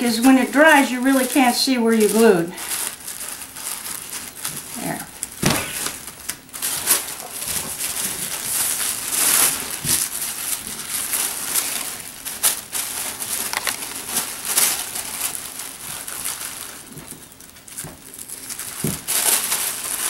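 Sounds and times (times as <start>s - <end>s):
tissue paper rustling: 0.0s - 20.0s.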